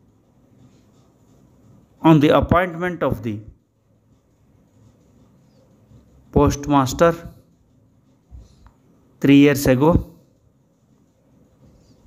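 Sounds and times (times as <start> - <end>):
man dictating: 2.0 - 3.6, 6.3 - 7.5, 9.2 - 10.4.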